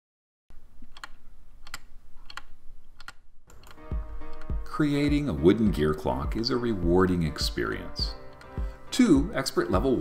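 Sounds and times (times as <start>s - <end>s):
wall clock ticking: 0.9s - 9.9s
music: 3.5s - 10.0s.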